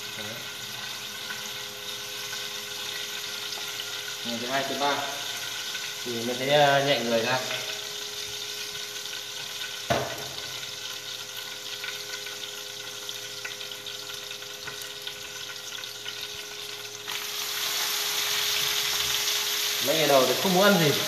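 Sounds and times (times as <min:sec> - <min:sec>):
fat sizzling in frying pan: 0:00.0 - 0:21.0.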